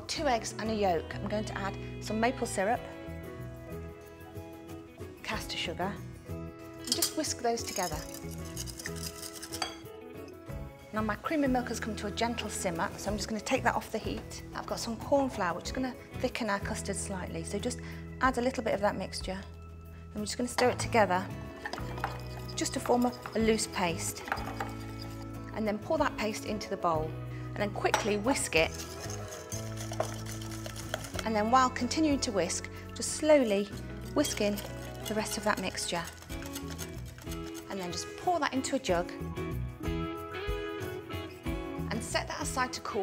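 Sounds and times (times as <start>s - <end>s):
background music: 0.0s - 43.0s
whisk clinking against glass bowl: 21.9s - 25.3s, 28.0s - 31.3s.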